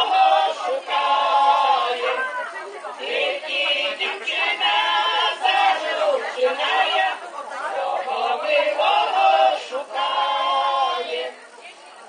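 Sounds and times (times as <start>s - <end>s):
women's choir singing a cappella: 0.0s - 11.6s.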